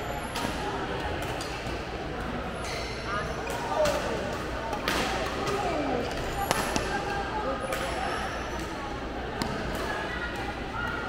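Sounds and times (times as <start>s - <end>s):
background chatter of people: 0.0s - 11.0s.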